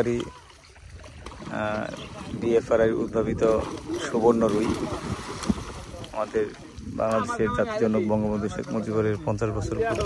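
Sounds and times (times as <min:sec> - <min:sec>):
water splashing and sloshing: 0:00.0 - 0:10.0
sharp splash: 0:03.4 - 0:06.8.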